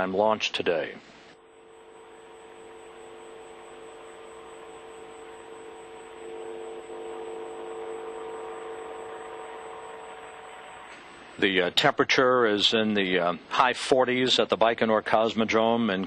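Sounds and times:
steady tonal hum: 0.0s - 16.0s.

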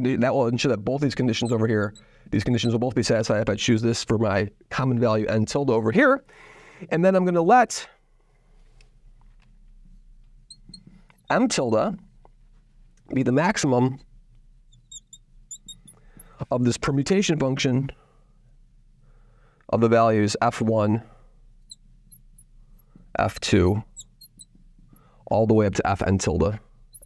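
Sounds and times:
marker tip squeaking: 1.4s - 2.8s, 10.4s - 11.8s, 14.7s - 16.4s, 21.6s - 25.1s
marker pen scratching on glass: 10.5s - 11.7s, 14.7s - 16.4s, 21.6s - 24.6s.

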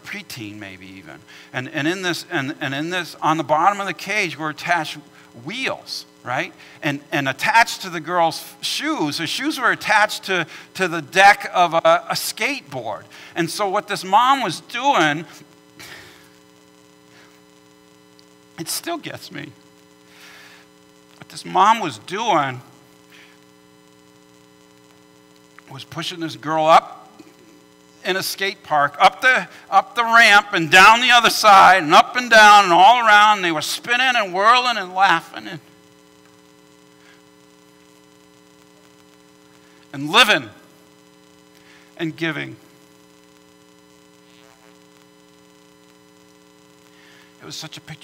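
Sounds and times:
man's voice: 0.0s - 15.4s, 18.6s - 19.5s, 21.2s - 22.7s, 25.7s - 27.4s, 28.0s - 35.7s, 39.9s - 40.6s, 42.0s - 42.6s, 47.4s - 48.0s
electrical hum with level tones: 0.0s - 48.0s
faint room noise: 0.0s - 48.0s.

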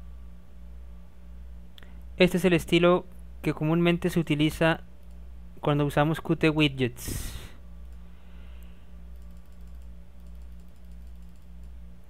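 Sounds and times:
steady low hum: 0.0s - 12.0s
computer mouse clicks: 9.2s - 11.8s.

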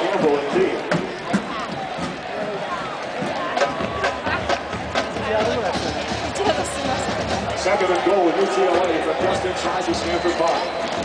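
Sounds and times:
hubbub of spectators' voices: 0.0s - 11.0s.

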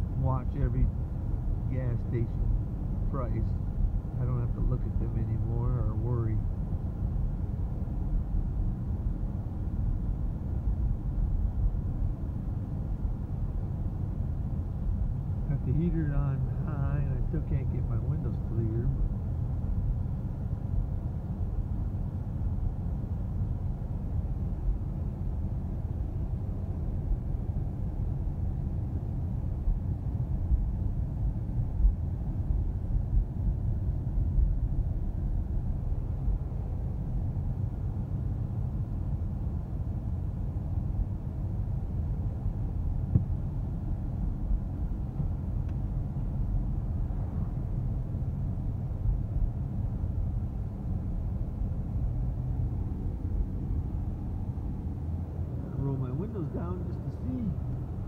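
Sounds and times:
heater fan running: 0.0s - 58.0s
low road rumble inside car: 0.0s - 58.0s.

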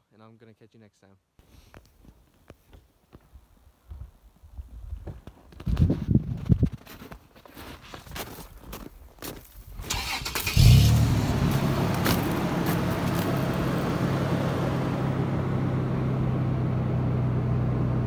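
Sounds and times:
truck engine cranking and idling: 9.8s - 18.0s
ignition clicks: 9.9s - 12.4s.

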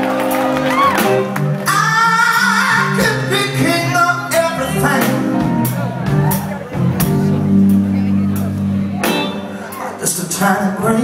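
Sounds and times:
bass: 0.0s - 11.0s.

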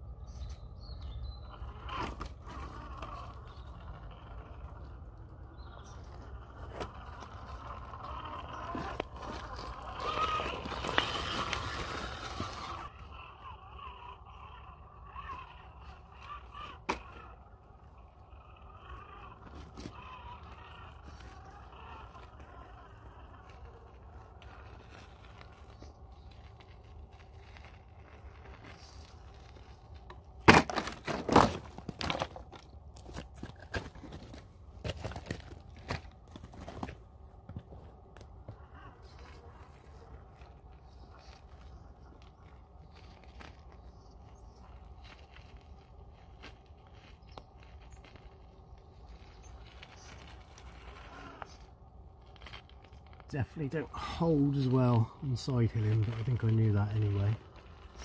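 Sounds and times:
tyres crunching on stones: 1.5s - 58.0s.

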